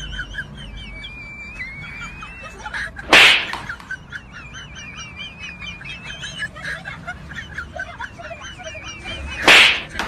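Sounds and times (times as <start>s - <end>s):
comic hit crack: 3.1s - 3.6s, 9.4s - 10.0s.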